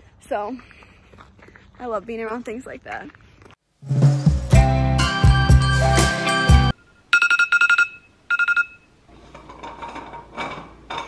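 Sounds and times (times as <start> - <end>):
phone alarm beeping: 6.7 - 8.9.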